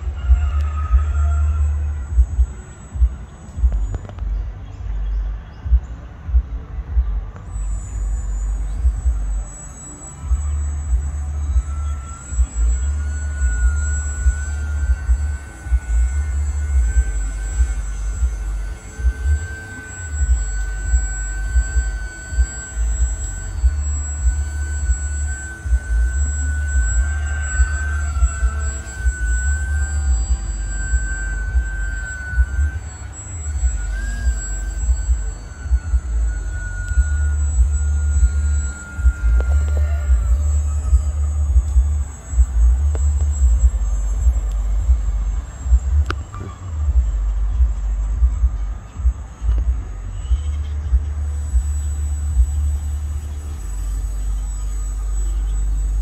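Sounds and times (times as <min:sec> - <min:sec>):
model airplane motor whine: 0:00.0 - 0:56.0
wind rumble on microphone: 0:00.0 - 0:56.0.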